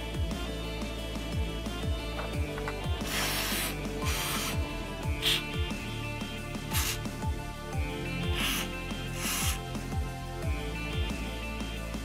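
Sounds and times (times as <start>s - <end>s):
background music with steady beat: 0.0s - 12.0s
aerosol spray can hissing: 3.0s - 5.6s, 6.6s - 7.2s, 8.2s - 9.8s.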